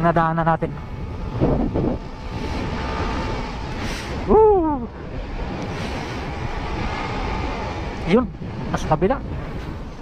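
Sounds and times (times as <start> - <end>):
motorcycle engine and tyres droning: 0.0 - 10.0
wind rushing over microphone: 0.0 - 10.0.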